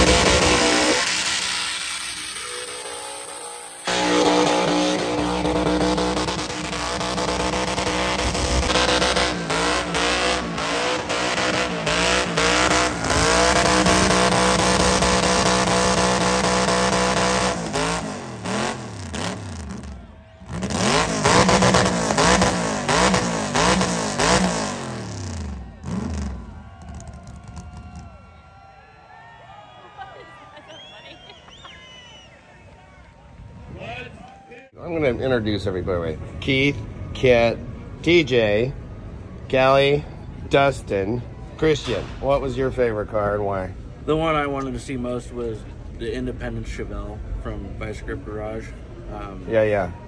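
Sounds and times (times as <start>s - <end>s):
pickup engine revving: 0.0s - 28.1s.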